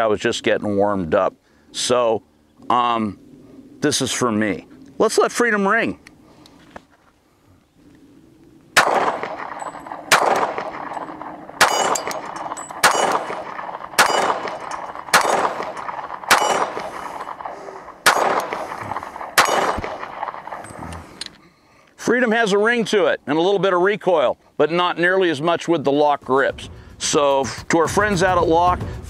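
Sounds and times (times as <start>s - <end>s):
pistol shots: 8.8s - 20.7s.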